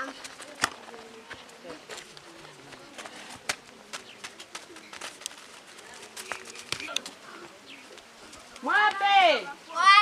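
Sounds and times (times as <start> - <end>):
boys' voices: 8.3 - 10.0.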